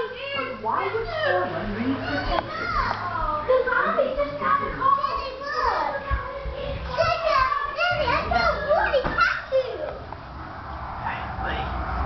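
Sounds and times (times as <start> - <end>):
children calling and crying out: 0.0 - 10.4.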